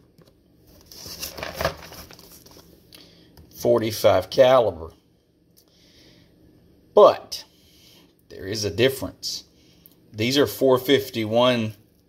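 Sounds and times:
cardboard box rustling and scraping: 0:00.8 - 0:02.6.

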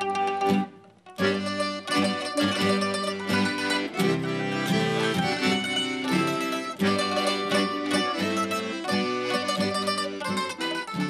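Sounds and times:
piano accordion: 0:00.0 - 0:11.0
plucked string instrument: 0:00.0 - 0:11.0.

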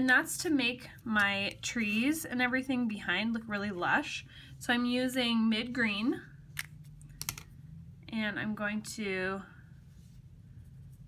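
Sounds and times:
art tools clicking on tabletop: 0:06.6 - 0:07.5.

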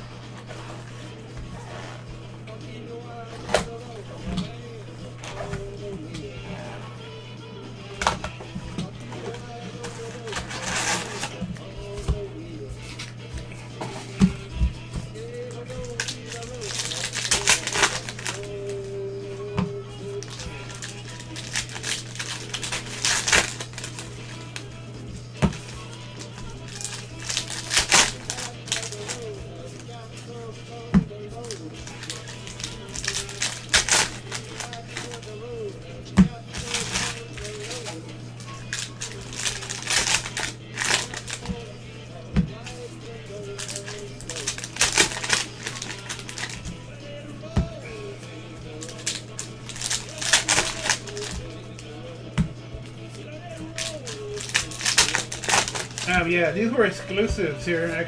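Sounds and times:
low electrical hum: 0:00.0 - 0:58.0
foil wrappers tearing and crinkling: 0:00.3 - 0:02.0, 0:09.0 - 0:12.1, 0:15.2 - 0:19.0, 0:20.0 - 0:24.7, 0:25.5 - 0:30.0, 0:31.4 - 0:35.6, 0:36.4 - 0:41.6, 0:42.6 - 0:46.8, 0:48.7 - 0:51.9, 0:53.6 - 0:56.9.

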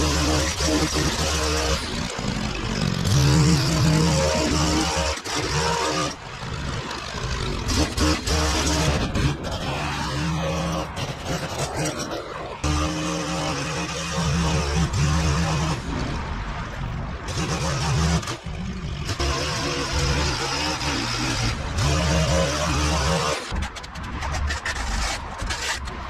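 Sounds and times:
string trimmer running: 0:00.0 - 0:16.4, 0:17.2 - 0:24.7.

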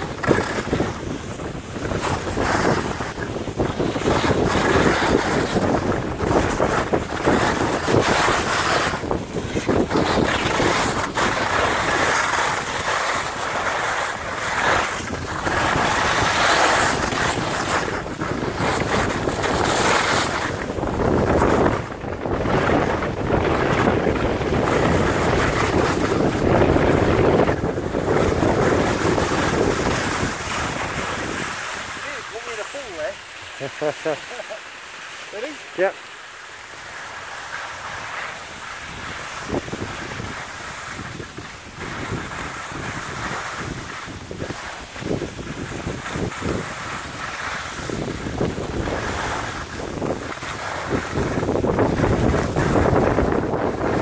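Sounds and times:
wind rushing over microphone: 0:00.0 - 0:34.2, 0:37.6 - 0:54.0
skis hissing on snow: 0:00.1 - 0:21.7, 0:24.6 - 0:54.0.

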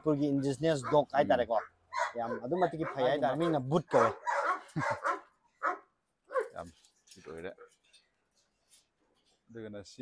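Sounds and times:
dog barking: 0:00.8 - 0:06.6.

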